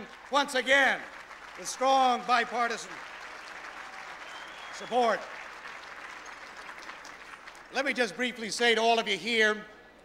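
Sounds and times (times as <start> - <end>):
audience applauding: 0.0 - 8.0
man speaking: 7.7 - 9.7.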